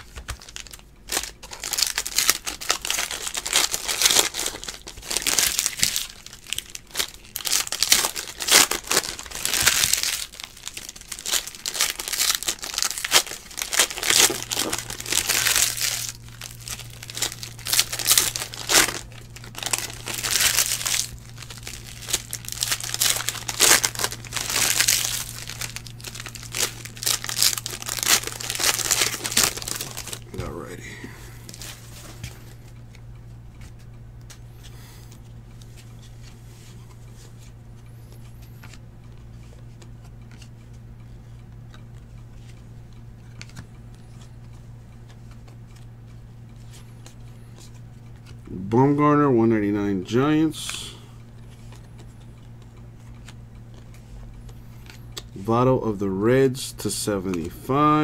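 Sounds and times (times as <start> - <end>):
foil wrappers crinkling and tearing: 0.0 - 30.8
low steady hum: 0.0 - 58.0.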